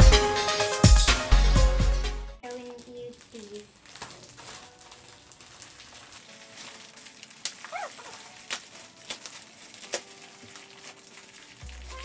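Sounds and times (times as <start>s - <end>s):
magazines rustling: 2.4s - 12.0s.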